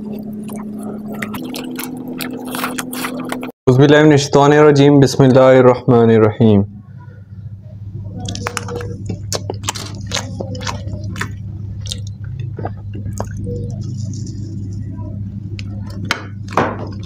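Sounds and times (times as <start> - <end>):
wet squishy chewing: 0.0 - 3.6, 8.2 - 17.0
low electrical hum: 0.0 - 17.0
mouth clicks and crackles: 0.1 - 3.5, 8.2 - 14.9.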